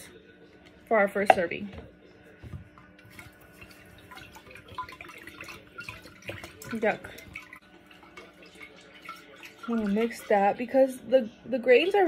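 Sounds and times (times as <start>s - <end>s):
water sloshing: 3.0s - 11.0s.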